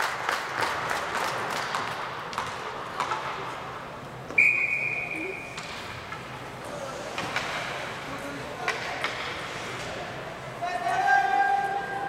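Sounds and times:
referee's whistle blast: 4.4s - 5.5s.

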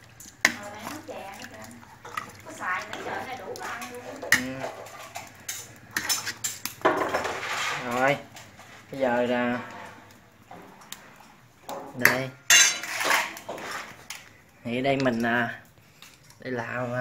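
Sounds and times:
metal ladle clinking on pot: 11.8s - 13.4s.

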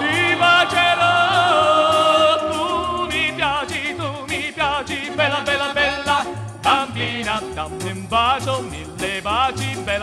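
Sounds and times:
vocal quartet singing: 0.0s - 8.0s
pulsing bass line: 0.0s - 10.0s.

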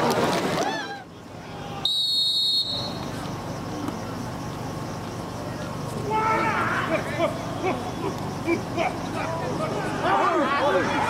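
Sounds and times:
referee's whistle: 1.8s - 3.1s.

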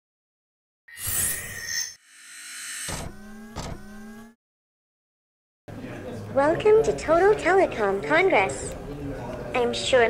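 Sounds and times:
held rising tone: 0.9s - 4.4s
electronic hit: 2.7s - 4.4s.

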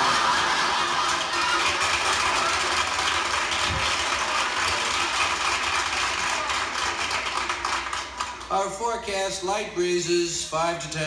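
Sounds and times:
audience laughing: 0.0s - 1.8s
audience applauding: 0.0s - 8.7s.

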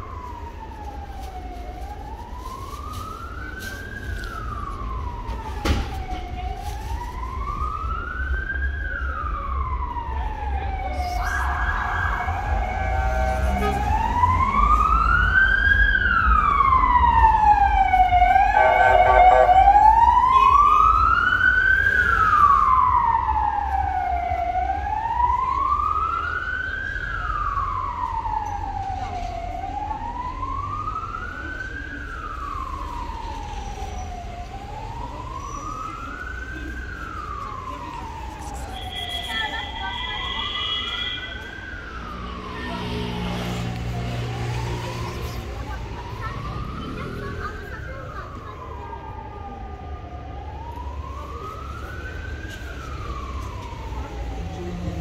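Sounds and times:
emergency siren wailing: 0.0s - 55.0s
low traffic rumble: 0.0s - 55.0s
horn blast: 18.6s - 19.8s.

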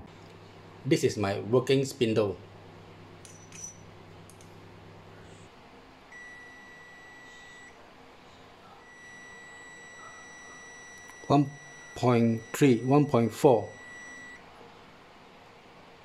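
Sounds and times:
multimeter beeping: 3.2s - 3.9s, 6.1s - 7.8s, 8.8s - 14.4s.

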